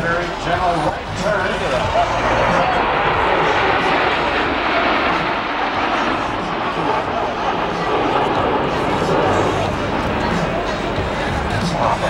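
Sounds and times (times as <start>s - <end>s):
jet engines flying past: 0.0s - 12.0s.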